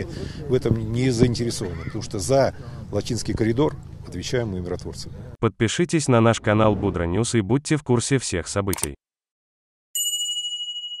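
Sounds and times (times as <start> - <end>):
bell-like ding chime: 10.0 - 11.0.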